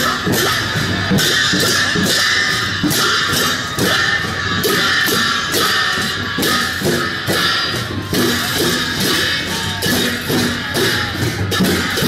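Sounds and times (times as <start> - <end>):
hand cymbals clashing: 0.0 - 12.0.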